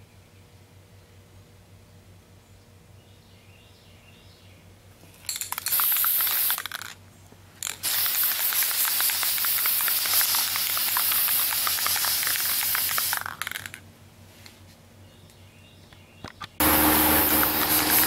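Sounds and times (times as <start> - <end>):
spray paint can hissing: 5.3 - 6.9, 7.6 - 13.8, 16.6 - 18.0.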